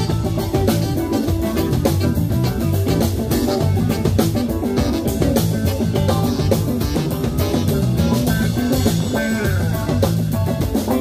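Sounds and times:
drum kit groove: 0:00.0 - 0:11.0
electric guitars: 0:00.0 - 0:11.0
keyboard: 0:00.0 - 0:11.0
saxophone: 0:00.0 - 0:11.0.

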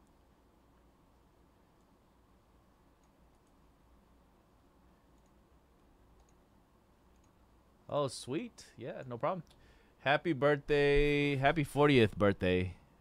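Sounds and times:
faint clicks: 0:02.9 - 0:03.7, 0:05.1 - 0:06.4, 0:07.1 - 0:07.4.

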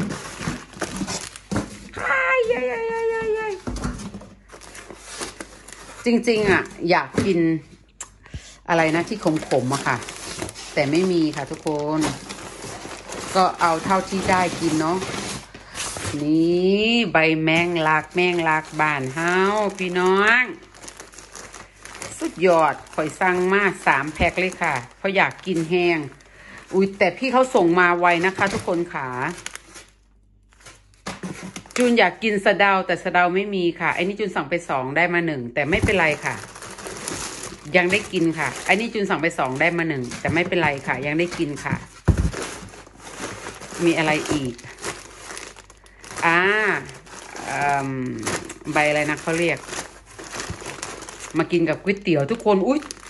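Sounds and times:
plastic bags crinkling: 0:00.0 - 0:07.3, 0:08.7 - 0:32.1, 0:35.6 - 0:53.0
person speaking: 0:02.0 - 0:03.8, 0:06.0 - 0:12.2, 0:43.8 - 0:44.8.

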